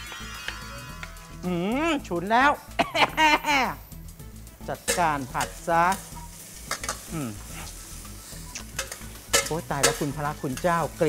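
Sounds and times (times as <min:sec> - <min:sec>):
food sizzling lightly: 0:03.2 - 0:11.0
metal spatula scraping a wok: 0:04.8 - 0:11.0.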